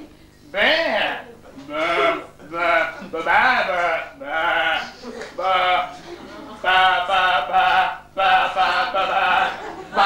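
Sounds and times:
person bleating like a sheep: 0.6s - 5.9s, 6.6s - 9.6s.

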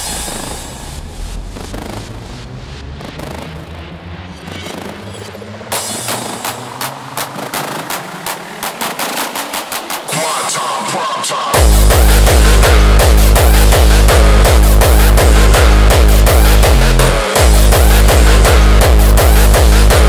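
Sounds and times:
sustained synth texture: 0.0s - 8.8s, 11.5s - 20.0s
pounding kick drum: 11.6s - 20.0s.

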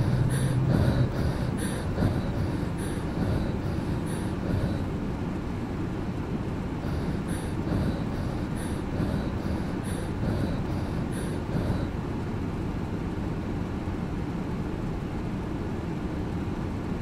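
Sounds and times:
low steady rumbling: 0.0s - 13.0s.

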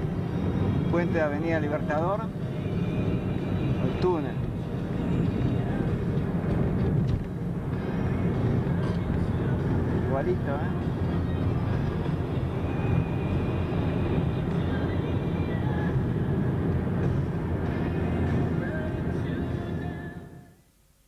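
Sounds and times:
car road and engine noise: 0.0s - 20.6s
music playing in car: 0.0s - 20.6s.

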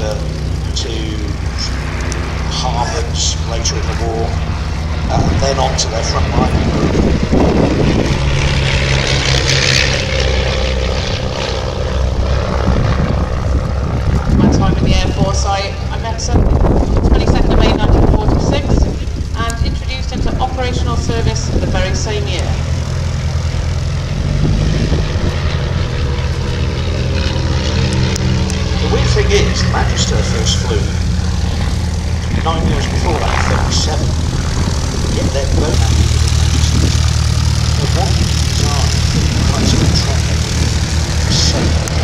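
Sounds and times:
propeller planes droning past: 0.0s - 42.0s.

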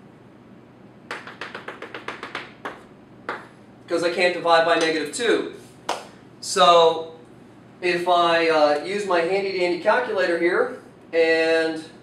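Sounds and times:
chalk tapping on chalkboard: 1.1s - 3.5s.

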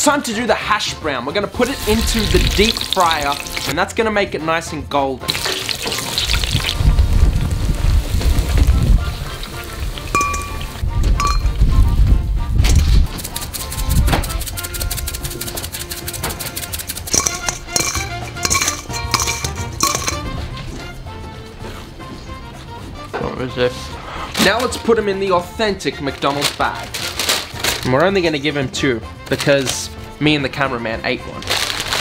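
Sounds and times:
background music with a beat: 5.3s - 23.2s
metal kitchenware clinking: 10.1s - 11.6s, 17.0s - 20.4s.

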